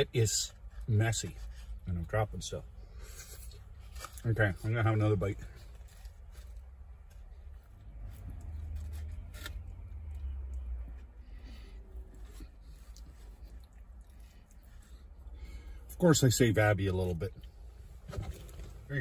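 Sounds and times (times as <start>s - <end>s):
man chewing food: 5.6s - 15.9s.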